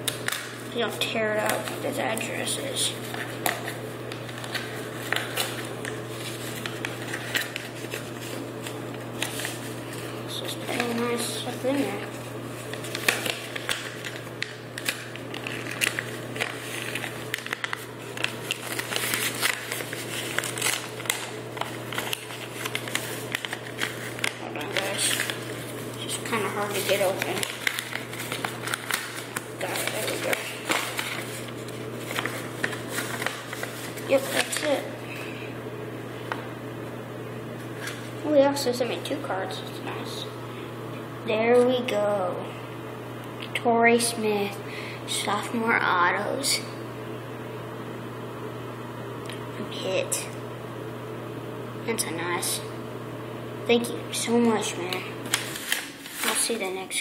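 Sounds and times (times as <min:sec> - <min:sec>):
steady low hum: 0:00.0 - 0:57.0
paper crinkling: 0:01.4 - 0:34.9, 0:37.8 - 0:38.1, 0:55.2 - 0:56.7.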